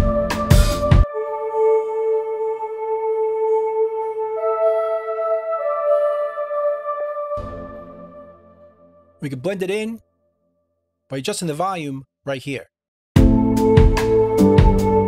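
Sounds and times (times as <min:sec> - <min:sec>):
soft synth pad chords: 0:01.1 - 0:09.0.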